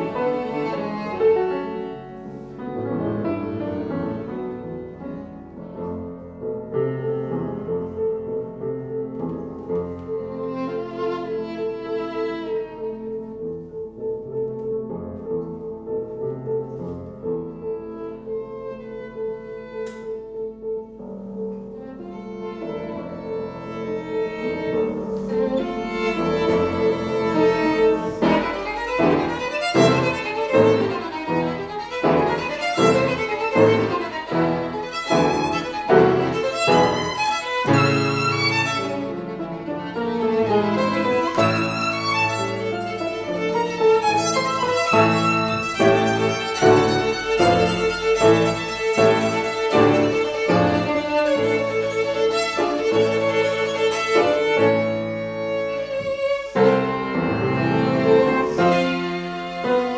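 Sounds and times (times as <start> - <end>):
piano notes: 0.0 - 59.9
violin melody: 0.0 - 59.9.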